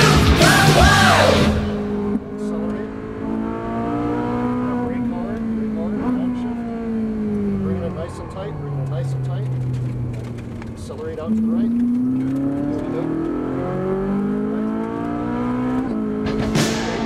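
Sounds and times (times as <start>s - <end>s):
rock music with shouted vocal: 0.0s - 2.0s
car engine revving inside cabin: 0.0s - 17.0s.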